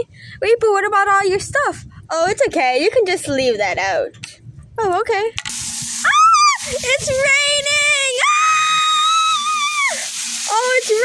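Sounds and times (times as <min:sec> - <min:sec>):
water falling onto gravel: 0:05.6 - 0:11.0
girl screaming: 0:06.0 - 0:10.1.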